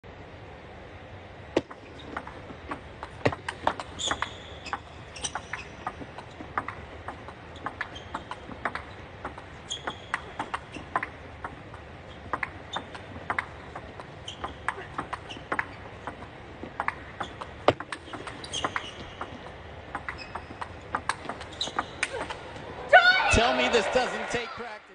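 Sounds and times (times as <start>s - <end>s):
table tennis ball clicking: 1.6s - 22.4s.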